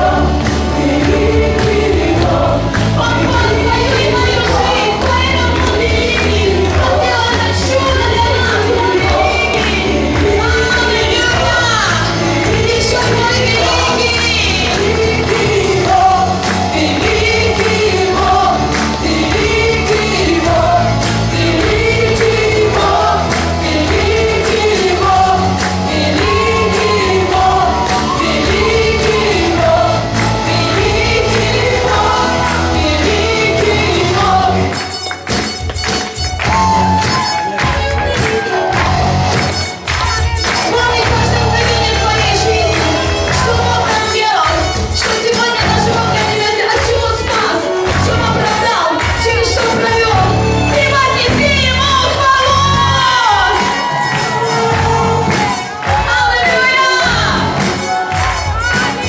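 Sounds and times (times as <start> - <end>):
singers in chorus: 0.0 - 35.2, 36.5 - 59.0
bass: 0.0 - 59.0
drums with steady beat: 0.0 - 59.0
worship band playing: 0.0 - 59.0.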